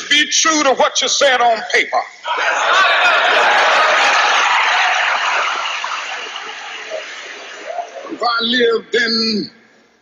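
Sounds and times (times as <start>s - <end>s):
audience applauding and cheering: 2.4s - 8.2s.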